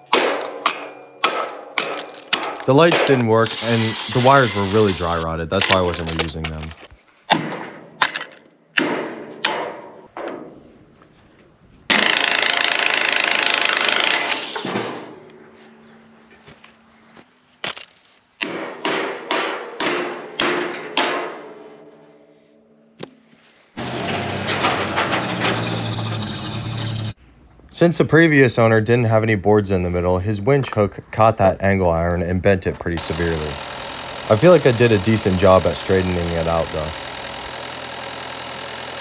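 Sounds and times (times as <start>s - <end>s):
sharp metallic knocks: 0.0s - 3.5s, 18.4s - 21.9s
cordless drill running: 3.4s - 6.0s, 11.9s - 14.6s, 33.0s - 39.0s.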